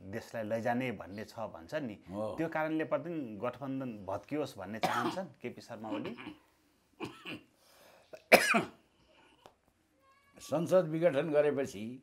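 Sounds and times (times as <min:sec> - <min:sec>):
man coughing: 0:04.8 - 0:06.4, 0:07.0 - 0:07.5, 0:08.2 - 0:08.8.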